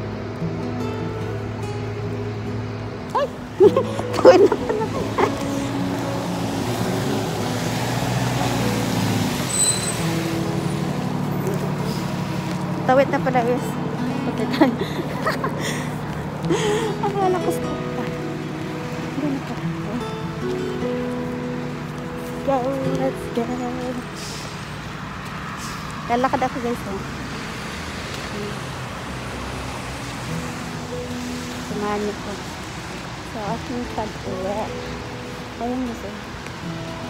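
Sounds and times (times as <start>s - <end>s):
road traffic rumble: 0.0s - 37.0s
vehicle engine humming: 0.0s - 37.0s.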